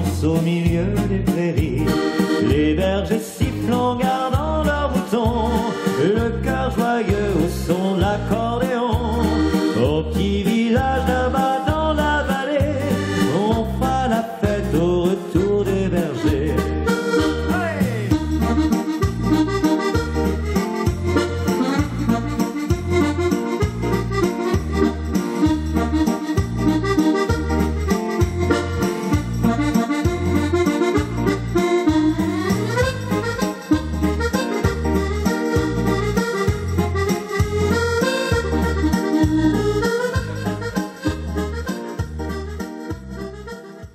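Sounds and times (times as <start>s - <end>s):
button accordion melody: 0.0s - 43.9s
steady bass beat: 0.0s - 43.9s.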